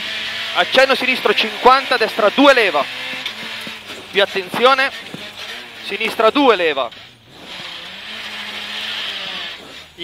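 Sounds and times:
car engine running: 0.0 - 10.0
road noise: 0.0 - 10.0.

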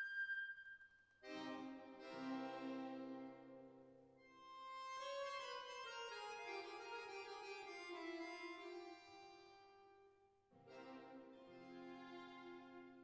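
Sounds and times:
accordion chamber music: 1.2 - 10.0, 10.6 - 13.0.

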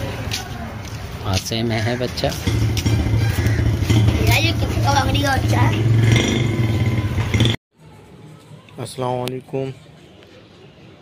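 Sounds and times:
voices: 0.0 - 11.0.

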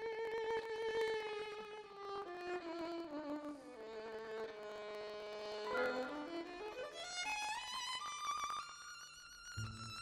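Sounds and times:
orchestral violins bowing: 5.5 - 6.7.

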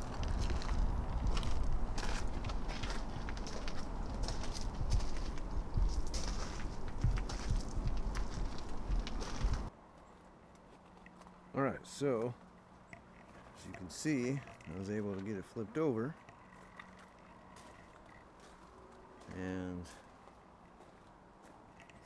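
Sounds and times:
wind rumbling on microphone: 0.0 - 9.7
footsteps crunching on gravel: 0.0 - 11.4, 13.2 - 22.0.

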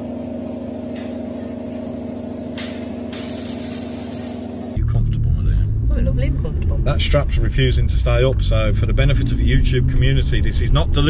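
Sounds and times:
steady pitched hum: 0.0 - 4.9.

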